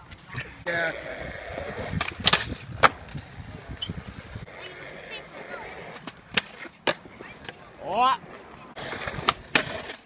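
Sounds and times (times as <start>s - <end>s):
skateboard wheels rolling on concrete: 0.0s - 10.0s
skateboard clacking on concrete: 1.6s - 10.0s.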